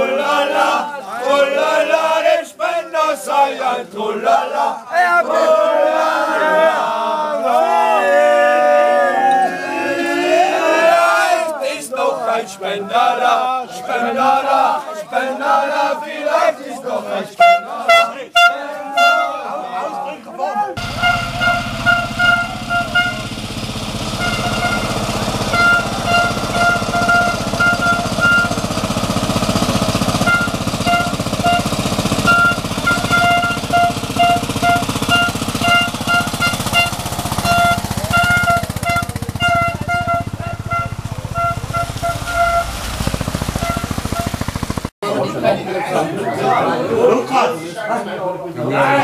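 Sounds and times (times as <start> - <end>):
tractor engine running: 20.8 - 44.9.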